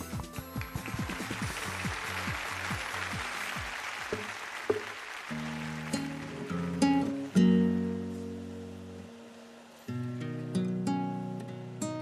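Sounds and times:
audience applause: 0:00.5 - 0:07.4
acoustic guitar chords: 0:05.3 - 0:12.0.

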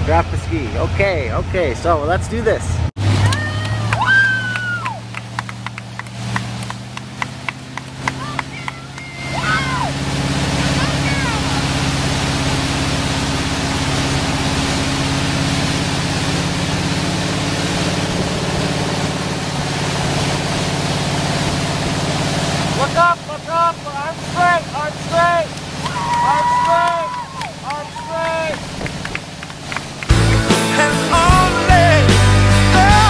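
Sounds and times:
boat engine running: 0:00.0 - 0:33.0
rush of wind and water: 0:02.8 - 0:30.3.

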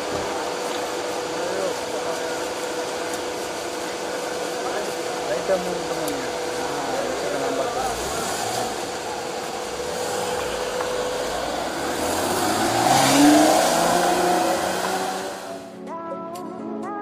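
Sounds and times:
car engine revving: 0:00.0 - 0:15.8.

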